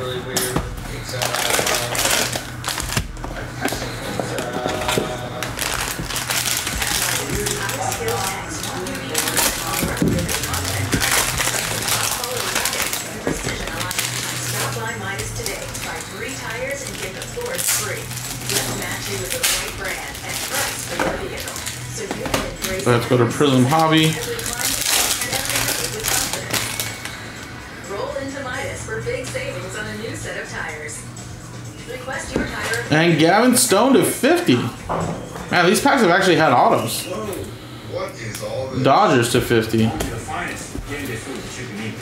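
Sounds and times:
background music: 0.0 - 37.8
foil wrappers crinkling and tearing: 1.0 - 27.2.

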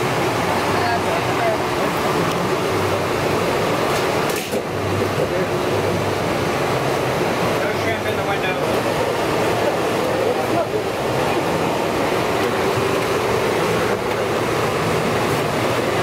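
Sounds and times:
hum of fans and kitchen equipment: 0.0 - 16.0.

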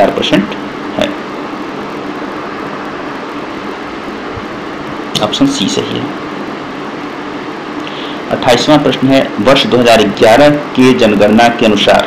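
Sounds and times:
faint low hum: 0.0 - 12.0
steady background hiss: 0.0 - 12.0.

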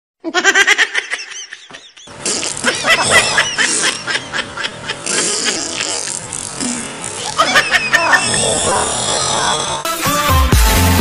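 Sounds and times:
bursts of laughter: 0.3 - 6.3, 7.2 - 9.0
background music: 9.9 - 11.0.

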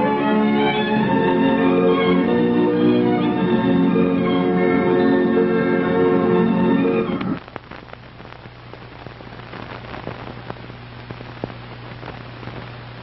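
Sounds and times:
organ music: 0.0 - 7.4
crackle and hiss: 6.8 - 13.0
clicks and pops: 7.2 - 12.7.

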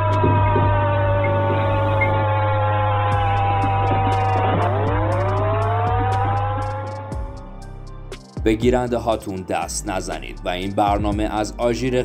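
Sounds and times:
air raid siren wailing: 0.0 - 8.2.

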